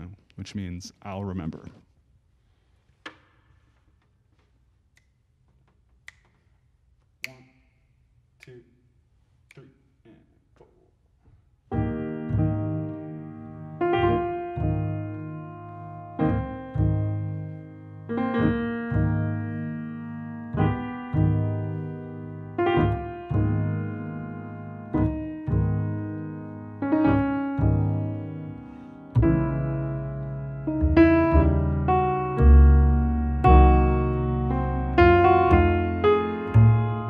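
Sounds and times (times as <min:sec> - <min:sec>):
piano playing jazz ballad chords: 0:11.7 - 0:37.0.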